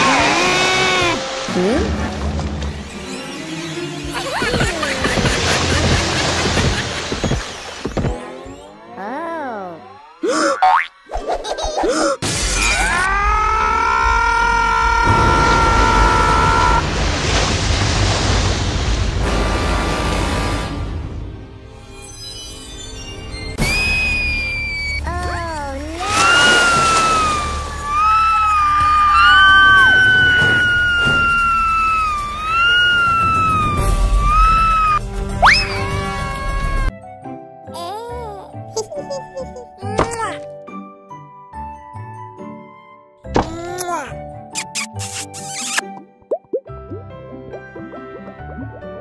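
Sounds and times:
cartoon scream sound effect: 0.0 - 1.2, 12.4 - 16.8, 23.6 - 36.9
background music: 19.9 - 49.0
rising whistle glide: 23.6 - 25.1, 26.1 - 35.8.

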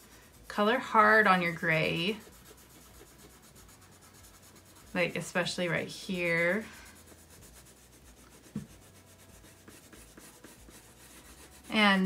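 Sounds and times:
colored pencils scratching on paper: 0.0 - 12.0.

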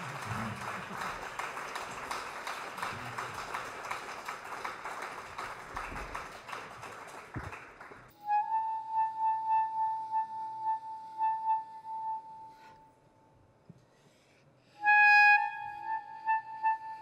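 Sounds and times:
audience applause: 0.0 - 8.1.

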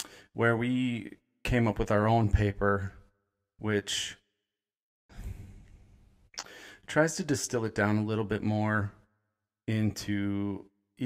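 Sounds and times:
man breathing close to microphone: 5.1 - 6.9.

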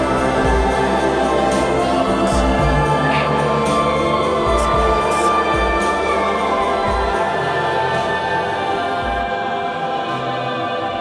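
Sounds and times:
sustained layered music chords: 0.0 - 11.0.

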